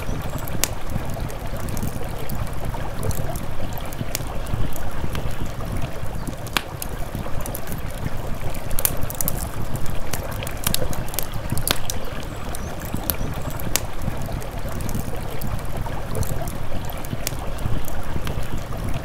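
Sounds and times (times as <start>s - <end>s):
campfire crackling and popping: 0.0s - 19.0s
river water rushing: 0.0s - 19.0s
wind on microphone: 0.0s - 19.0s.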